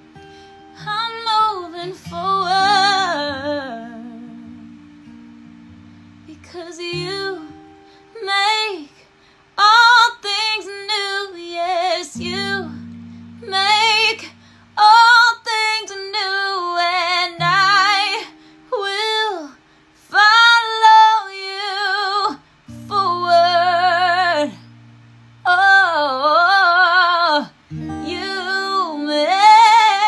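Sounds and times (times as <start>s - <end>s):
acoustic guitar chords: 0.0s - 30.0s
woman singing with vibrato: 0.8s - 4.9s, 6.2s - 24.8s, 25.4s - 30.0s.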